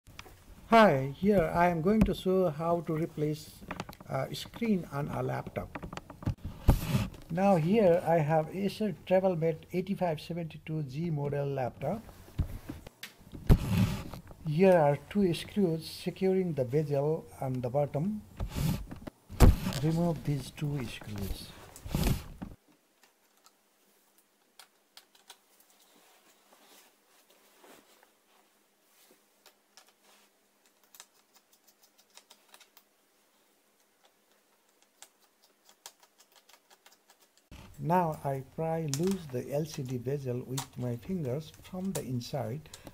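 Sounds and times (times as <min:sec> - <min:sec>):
hands handling plastic: 0:18.5 - 0:23.6, 0:34.0 - 0:42.9.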